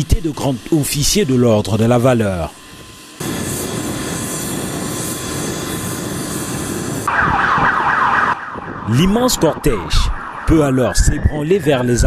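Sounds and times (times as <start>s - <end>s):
siren sweeping in pitch: 7.1s - 12.0s.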